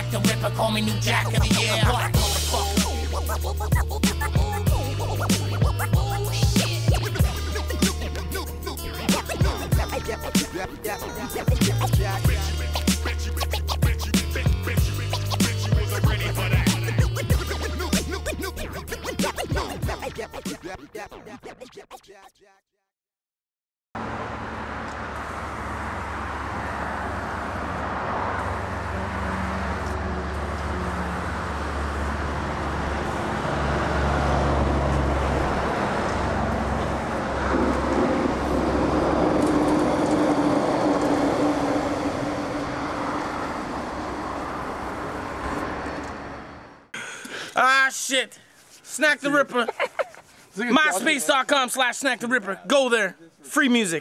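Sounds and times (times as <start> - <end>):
traffic rumble: 0.0 - 19.3, 24.0 - 47.6
hip hop bass and drum beat: 0.0 - 22.4
turntable scratching: 0.0 - 22.4.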